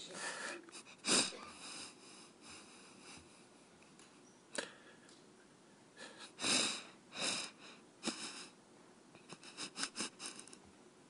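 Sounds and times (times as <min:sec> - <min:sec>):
man sniffing: 0:00.2 - 0:03.5, 0:06.0 - 0:08.6, 0:09.2 - 0:10.6
shaky breathing: 0:09.2 - 0:10.6.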